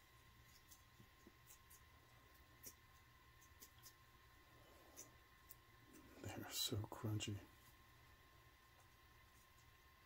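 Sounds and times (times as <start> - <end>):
lizard chewing crunchy worm: 0.0 - 6.3
low steady hum: 0.0 - 10.0.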